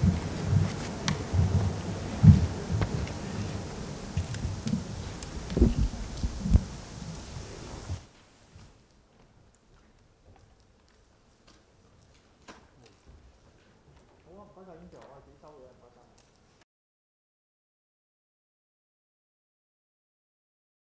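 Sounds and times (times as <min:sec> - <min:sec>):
dull low thumps: 0:00.0 - 0:08.0
room noise: 0:00.0 - 0:16.6
rustling: 0:00.0 - 0:16.6.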